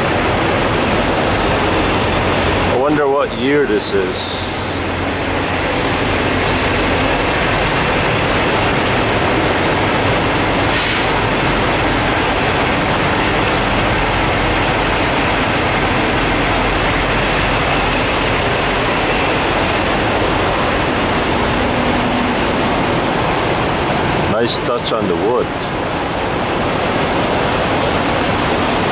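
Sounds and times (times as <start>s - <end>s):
diesel truck engine idling: 0.0s - 28.9s.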